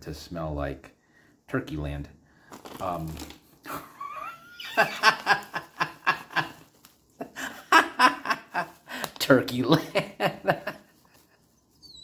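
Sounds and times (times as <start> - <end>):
man laughing: 3.7 - 6.6, 7.2 - 11.2.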